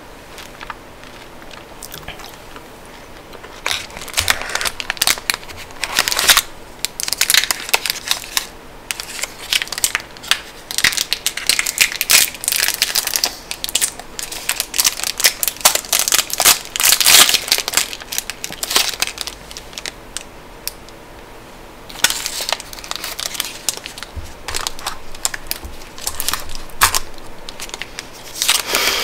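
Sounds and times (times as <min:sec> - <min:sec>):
wrapper crinkling: 0:03.3 - 0:20.0, 0:21.9 - 0:29.0.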